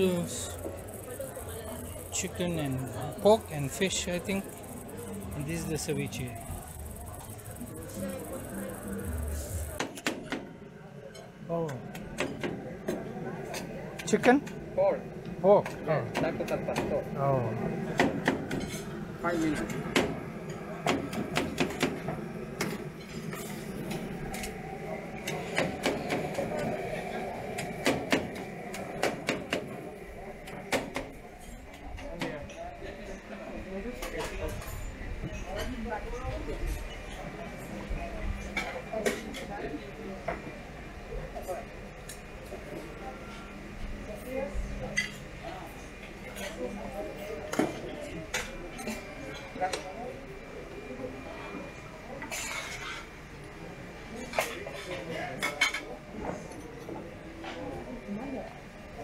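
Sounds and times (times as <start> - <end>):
murmur of voices: 0.0 - 59.0.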